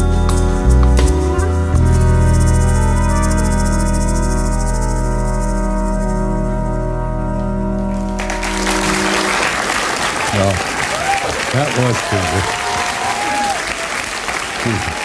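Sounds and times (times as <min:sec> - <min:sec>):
live band chord held: 0:00.0 - 0:10.9
applause: 0:08.0 - 0:15.0.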